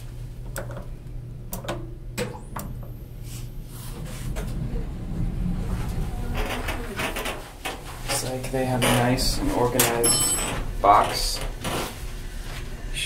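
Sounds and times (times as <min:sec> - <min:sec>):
steady low hum: 0:00.0 - 0:13.0
elevator sliding door rumbling shut: 0:03.8 - 0:13.0.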